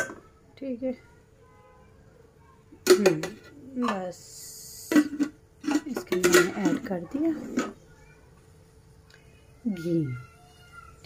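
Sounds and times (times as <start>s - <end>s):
faint steady hum: 0.0s - 11.0s
woman speaking: 2.8s - 5.0s, 5.7s - 7.6s, 9.7s - 10.3s.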